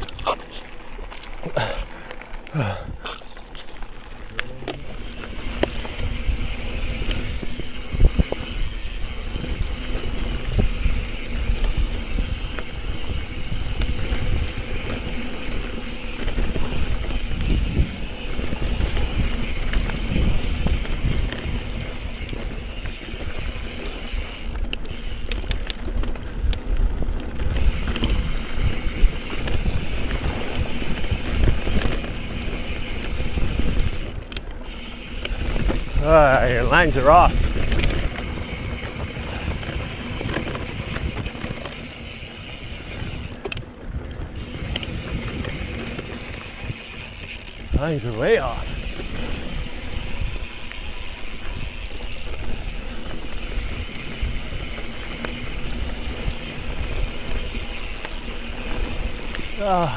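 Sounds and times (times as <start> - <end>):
bike clicks and knocks: 0.0 - 59.9
mountain bike tyre noise on dirt: 0.0 - 59.9
wind rumble on microphone: 4.5 - 34.4, 35.0 - 59.9.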